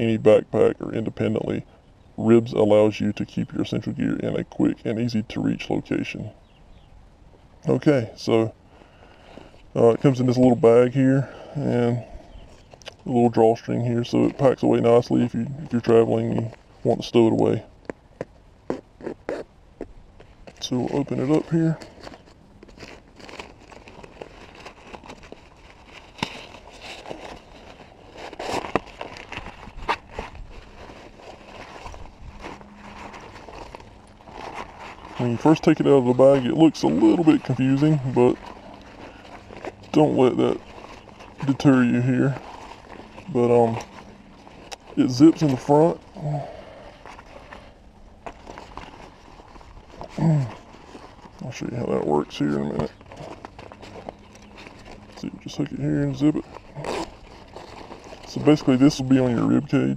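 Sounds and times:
fabric rustling and crinkling: 9.1 - 59.9.

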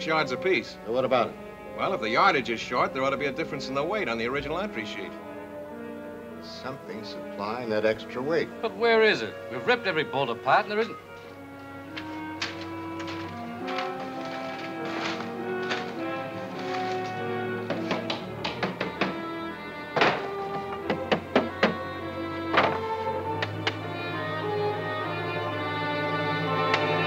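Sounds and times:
dramatic orchestral music: 0.0 - 27.0
boards knocking on wooden table: 17.7 - 19.3, 20.0 - 21.8, 22.5 - 22.9.

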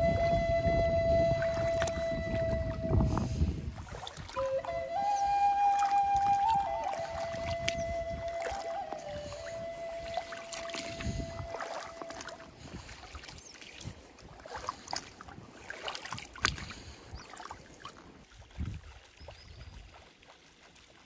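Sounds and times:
held musical note: 0.0 - 3.4, 4.4 - 12.5
boots sloshing through river: 1.2 - 21.0.

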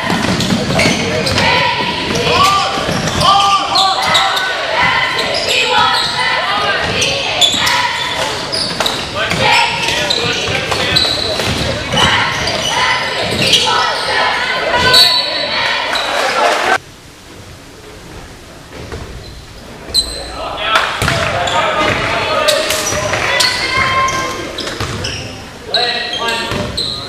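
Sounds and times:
voices of spectators and players: 0.0 - 16.8, 17.7 - 27.0.

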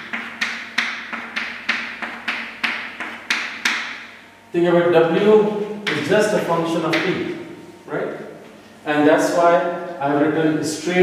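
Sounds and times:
chalk tapping on chalkboard: 0.0 - 4.0, 5.8 - 6.1, 6.9 - 7.1.

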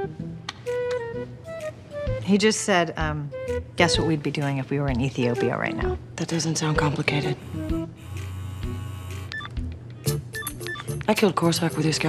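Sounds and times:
phone keypad beeps: 9.3 - 9.6, 10.4 - 11.0.

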